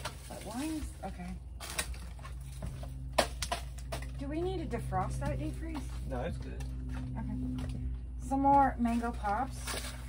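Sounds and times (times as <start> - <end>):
freezer hum: 0.0 - 10.0.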